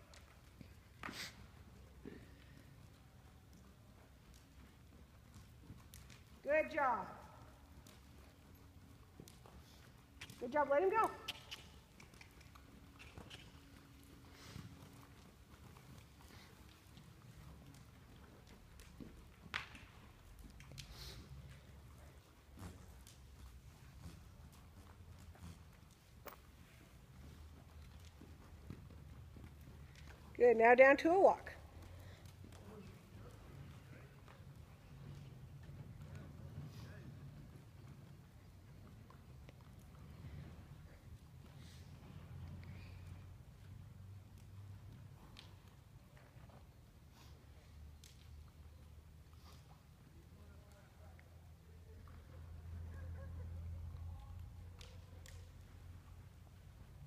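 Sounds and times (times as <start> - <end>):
horse hoofbeats on soft dirt: 0.0 - 57.0.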